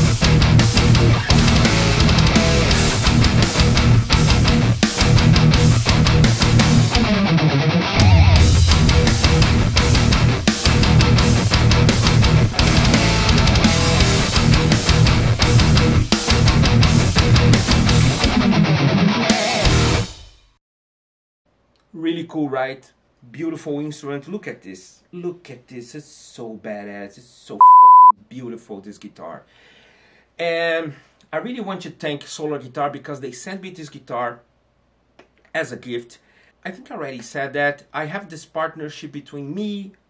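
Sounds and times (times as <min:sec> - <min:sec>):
distorted electric guitar riff: 0:00.0 - 0:20.2.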